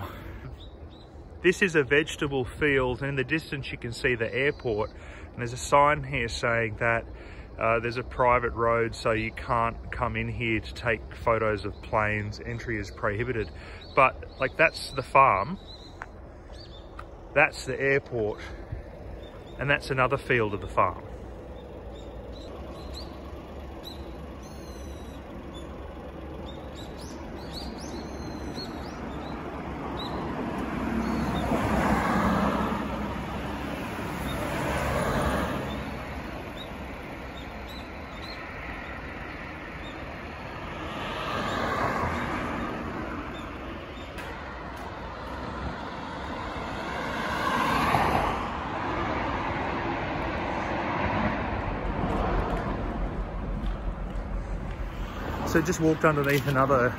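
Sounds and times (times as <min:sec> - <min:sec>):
cars passing: 0:00.0 - 0:56.9
low traffic rumble: 0:00.0 - 0:56.9.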